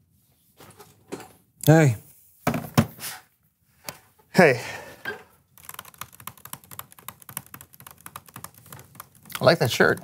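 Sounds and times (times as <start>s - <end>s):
laptop keyboard typing: 5.5s - 10.0s.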